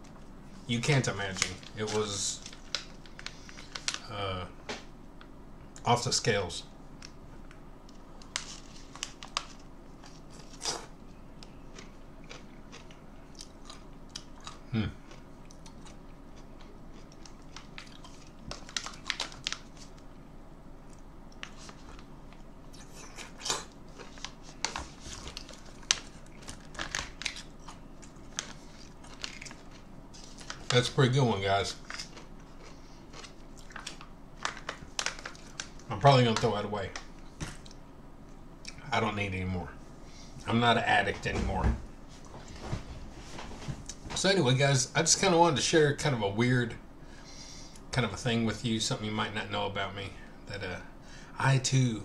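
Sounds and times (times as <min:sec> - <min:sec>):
crisp crunches: 0:08.2 - 0:20.1, 0:22.8 - 0:36.5
man chewing a pickle: 0:08.2 - 0:20.1, 0:20.8 - 0:30.7, 0:31.8 - 0:35.7.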